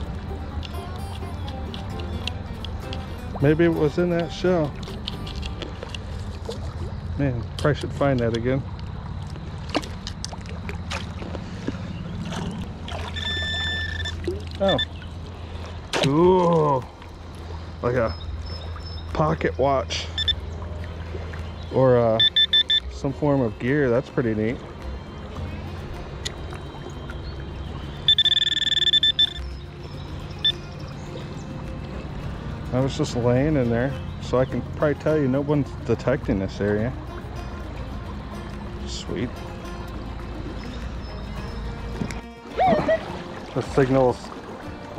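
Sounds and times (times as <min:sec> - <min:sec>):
flowing river water: 0:00.0 - 0:44.9
small water splashes: 0:00.0 - 0:44.9
metal detector beeping: 0:13.1 - 0:15.0, 0:20.0 - 0:20.4, 0:22.1 - 0:22.9, 0:28.0 - 0:29.6, 0:30.4 - 0:30.7.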